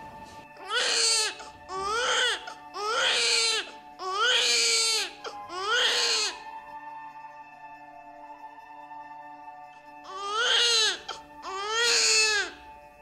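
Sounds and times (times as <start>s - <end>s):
soft background music: 0.0s - 13.0s
newborn baby crying: 0.6s - 6.5s, 10.0s - 12.7s.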